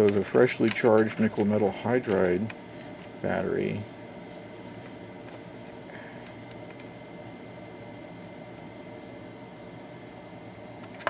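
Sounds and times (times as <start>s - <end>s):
room background hiss: 0.0s - 11.0s.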